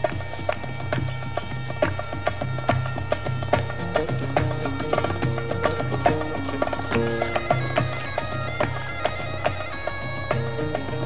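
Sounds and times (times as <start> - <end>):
percussion strikes: 0.0 - 11.0
reed-like melody: 0.0 - 11.0.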